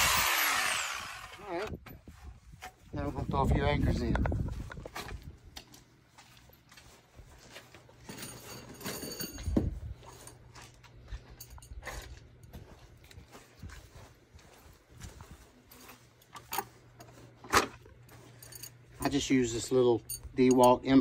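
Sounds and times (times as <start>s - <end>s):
footsteps: 1.8s - 20.7s
metal anchors clinking: 8.0s - 10.4s, 16.2s - 21.0s.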